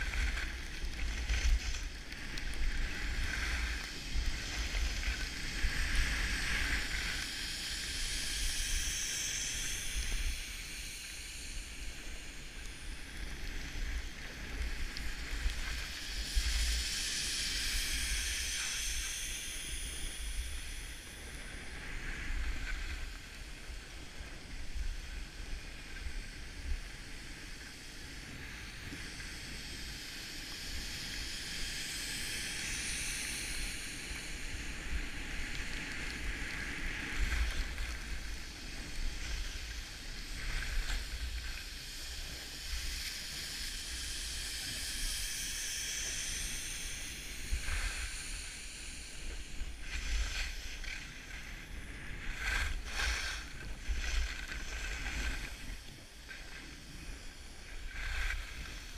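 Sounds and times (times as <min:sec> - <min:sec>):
skis hissing and scraping on snow: 0:00.0 - 0:58.9.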